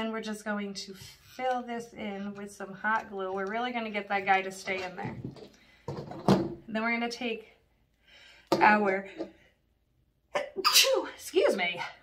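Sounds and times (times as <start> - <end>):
woman sneezing: 10.4 - 11.2.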